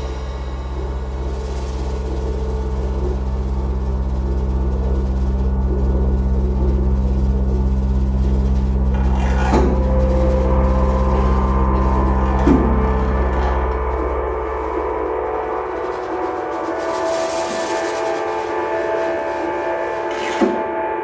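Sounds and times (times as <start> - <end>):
hissing cymbal wash: 0.0 - 21.0
layered tonal drone: 0.0 - 21.0.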